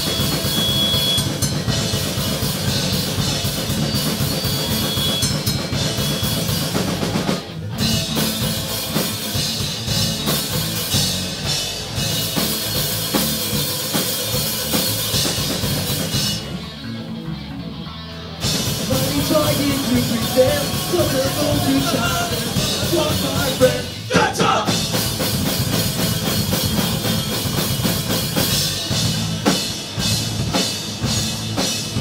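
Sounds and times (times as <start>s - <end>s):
punk rock band playing: 0.0s - 32.0s.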